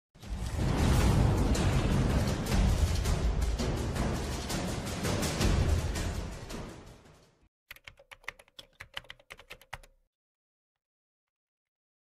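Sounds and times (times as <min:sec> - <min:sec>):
rapid keyboard typing: 0:07.7 - 0:10.0.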